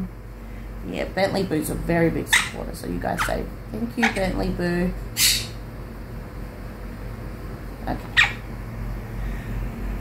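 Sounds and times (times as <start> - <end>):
parrot squawk: 2.3 - 4.4, 5.2 - 5.6, 8.1 - 8.5.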